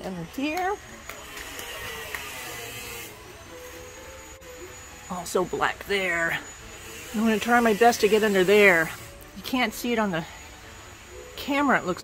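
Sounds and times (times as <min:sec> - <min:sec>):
power tool grinding: 0:00.2 - 0:11.9.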